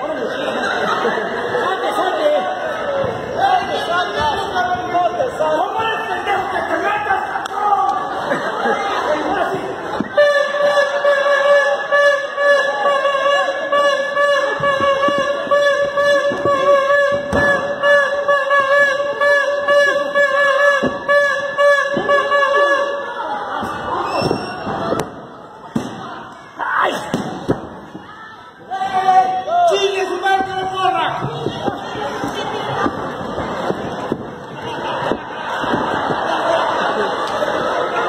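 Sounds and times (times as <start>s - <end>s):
arena crowd chatter: 0.0s - 38.0s.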